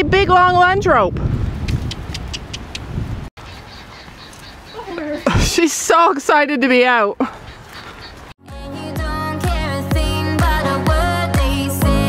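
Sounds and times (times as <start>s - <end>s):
wind buffeting microphone: 0.0s - 5.7s.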